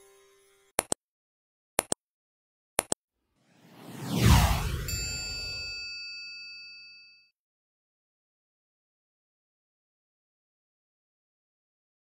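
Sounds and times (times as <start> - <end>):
deep downward whoosh: 3.4 - 5.8
bright bell-like ding: 4.9 - 7.3.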